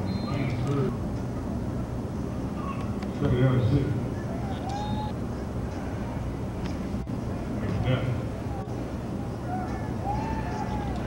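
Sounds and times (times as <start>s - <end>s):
faint voices: 0.0s - 11.0s
steady low rumble: 0.0s - 11.0s.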